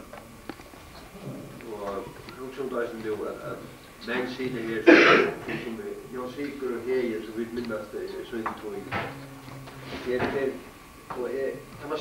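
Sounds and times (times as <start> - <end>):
man talking: 1.6 - 9.1, 10.0 - 12.0
throat-clearing: 4.8 - 5.7.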